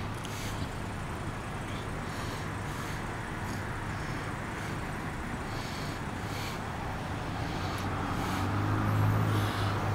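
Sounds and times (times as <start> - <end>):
road traffic passing: 0.0 - 9.9.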